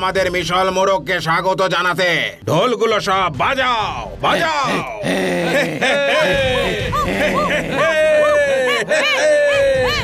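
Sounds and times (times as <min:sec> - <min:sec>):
man crying out: 0:04.7 - 0:10.0.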